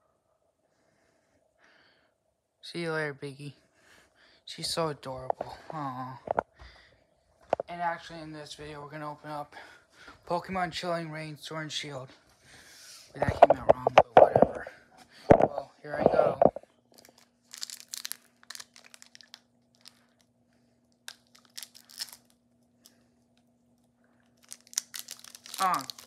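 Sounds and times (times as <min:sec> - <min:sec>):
faint steady hum: 0:00.0 - 0:26.0
foil pack tearing and crinkling: 0:17.0 - 0:20.3, 0:21.0 - 0:22.4, 0:24.3 - 0:26.0.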